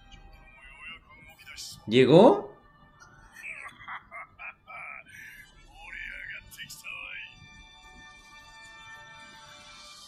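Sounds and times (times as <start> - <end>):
pitch-altered cartoon voice laughing: 3.6 - 5.2.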